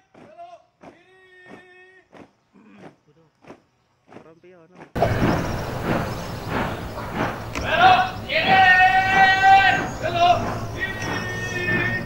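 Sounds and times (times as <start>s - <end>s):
marching footsteps stamping in step: 3.4s - 12.0s.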